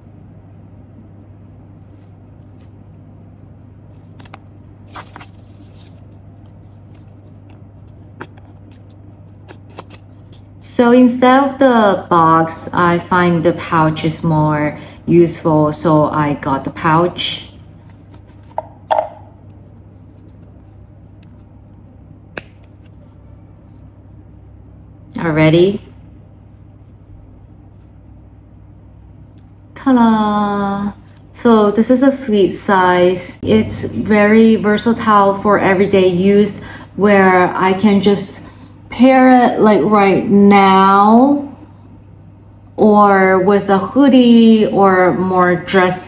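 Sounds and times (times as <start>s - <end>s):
steady low hum: 0.0s - 46.0s
fabric ribbon rustling: 1.8s - 2.8s, 3.8s - 7.6s.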